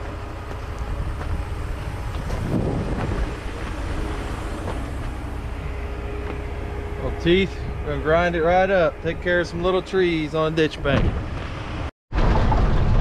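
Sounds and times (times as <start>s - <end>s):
diesel engine idling: 0.0s - 11.9s
faint hum: 0.0s - 11.9s.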